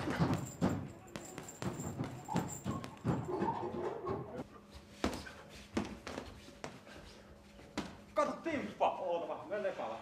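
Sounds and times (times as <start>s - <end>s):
gloved punches on bags: 0.0s - 3.4s.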